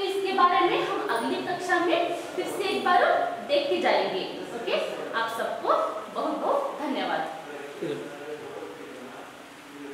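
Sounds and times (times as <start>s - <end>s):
woman speaking: 0.0s - 7.3s.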